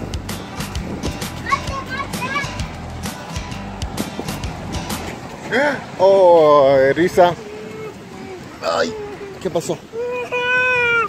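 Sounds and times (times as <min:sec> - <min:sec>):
background music with steady beat: 0:00.0 - 0:05.4.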